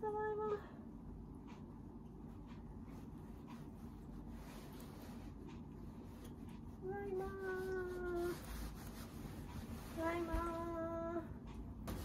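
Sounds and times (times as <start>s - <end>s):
faint handling sounds: 2.2s - 12.0s.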